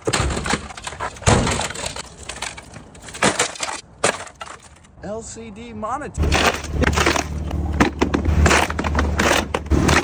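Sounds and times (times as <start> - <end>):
monitor frame crunching and cracking: 0.0 - 4.7.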